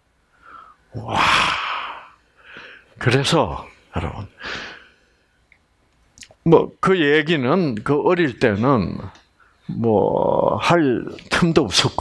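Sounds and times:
soft breath: 0.2 - 3.0, 3.7 - 5.4
man's breathy exclamation: 0.9 - 2.2.

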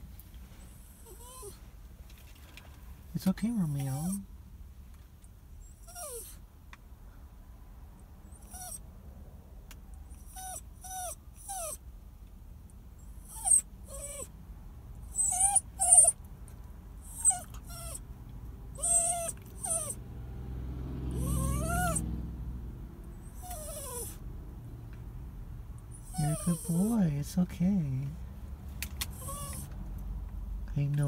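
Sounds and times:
small dog whining: 0.7 - 1.6, 3.9 - 4.2, 5.6 - 6.4, 8.3 - 8.8, 10.2 - 11.8, 13.0 - 14.3, 15.1 - 16.2, 17.0 - 18.1, 18.7 - 20.0, 21.2 - 22.0, 23.2 - 24.2, 25.9 - 26.9, 29.1 - 29.7.

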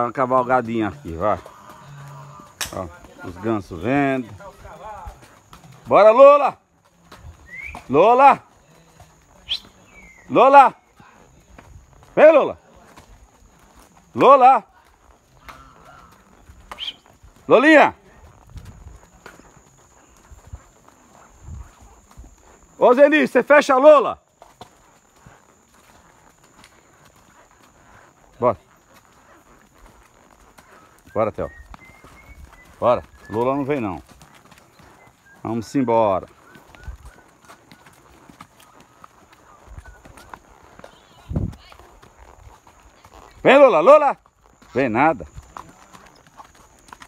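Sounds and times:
horse hooves on mud: 0.0 - 47.0
man calling out: 7.9 - 8.5, 10.3 - 10.8, 12.1 - 12.6, 14.2 - 14.7, 17.5 - 18.0, 22.8 - 24.2, 43.4 - 44.2.

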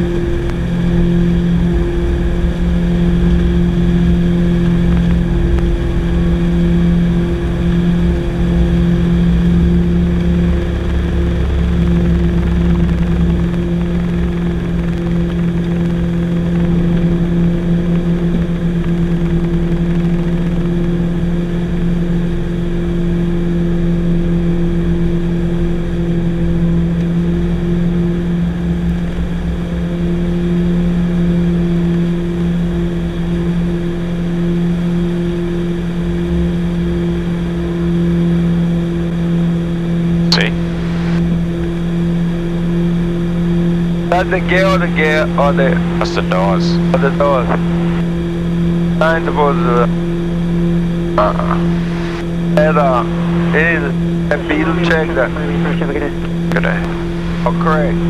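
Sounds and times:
low runway rumble: 0.0 - 58.0
propeller engine drone: 0.0 - 58.0.

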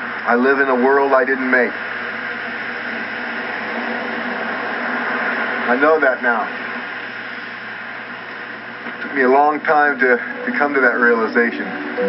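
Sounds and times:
faint low hum: 0.0 - 12.0
steady hiss: 0.0 - 12.0.

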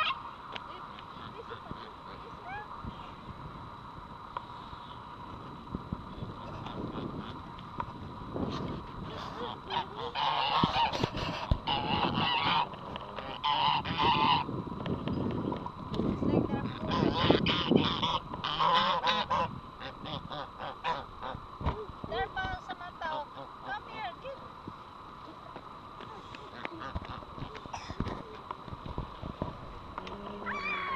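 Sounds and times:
geese honking: 0.0 - 2.7, 6.4 - 7.6, 8.6 - 14.5, 16.5 - 21.4, 23.0 - 24.1, 26.2 - 27.9.

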